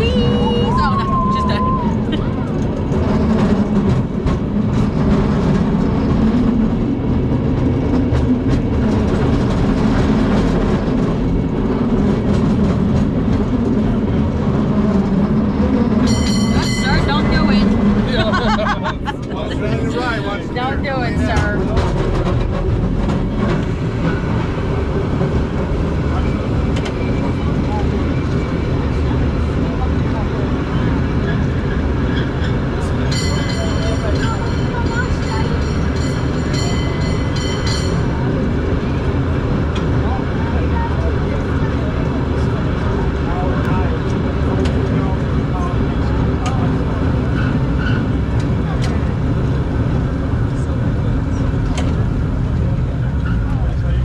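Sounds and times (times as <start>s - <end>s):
cable car rumbling on rails: 0.0s - 54.0s.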